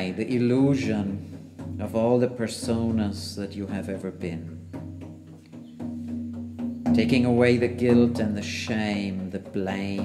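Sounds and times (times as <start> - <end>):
drum beaten in steady rhythm: 0.0 - 10.0.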